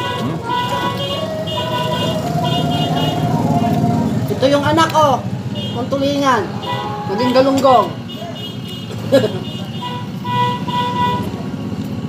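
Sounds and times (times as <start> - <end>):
vehicle horn: 0.0 - 4.3, 5.5 - 6.0, 6.6 - 11.4
vehicle engine rumbling: 0.0 - 12.0.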